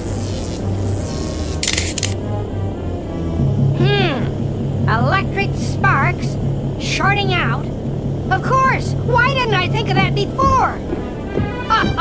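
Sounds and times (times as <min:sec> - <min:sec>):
low sustained drone: 0:00.8 - 0:11.4.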